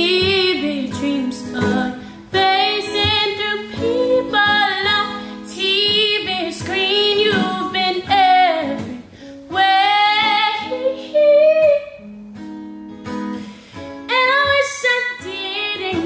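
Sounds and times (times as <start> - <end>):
woman singing soul song: 0.0 - 12.2, 14.0 - 16.0
acoustic guitar: 0.0 - 16.0.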